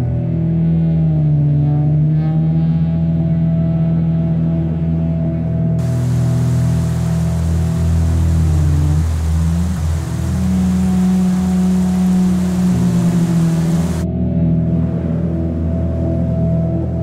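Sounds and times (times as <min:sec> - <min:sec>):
background music with drone tones: 0:00.0 - 0:17.0
waterfall rushing: 0:05.8 - 0:14.0.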